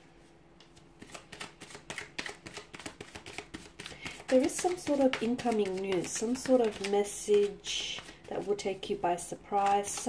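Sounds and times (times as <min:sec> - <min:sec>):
cards being shuffled: 0:00.7 - 0:08.7, 0:09.5 - 0:10.0.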